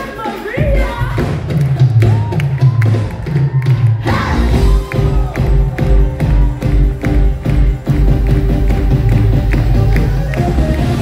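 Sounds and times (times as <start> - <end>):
electric bass: 4.1 - 11.0
keyboards: 4.1 - 11.0
steady low beat: 4.4 - 11.0.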